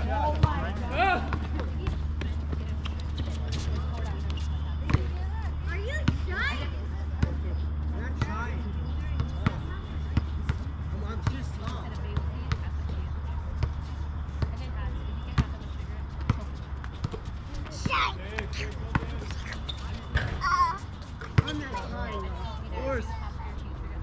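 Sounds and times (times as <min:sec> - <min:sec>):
basketball bouncing: 0:00.2 - 0:05.3, 0:08.1 - 0:14.7, 0:15.3 - 0:15.6, 0:16.2 - 0:20.4.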